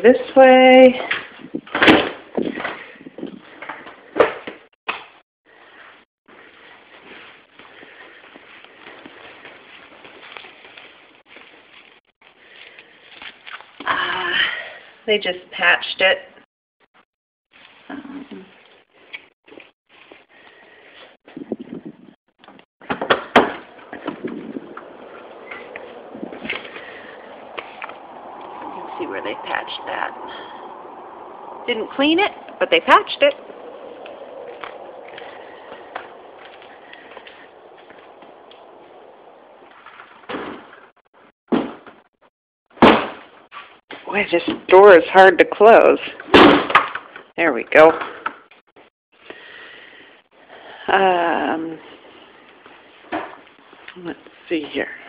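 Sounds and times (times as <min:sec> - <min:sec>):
footsteps: 0:05.8 - 0:13.8, 0:23.4 - 0:42.0.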